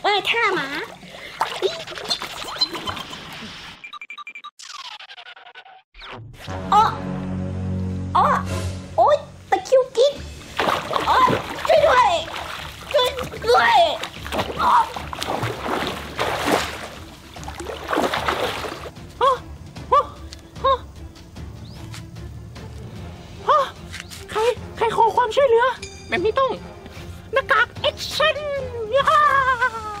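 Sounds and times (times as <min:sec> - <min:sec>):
water splashing: 0:00.0 - 0:03.4, 0:10.3 - 0:19.0.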